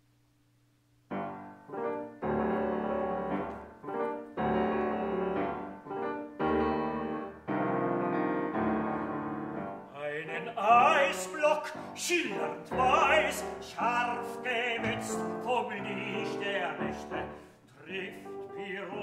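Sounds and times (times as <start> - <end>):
piano sustained chords: 1.1 - 17.5.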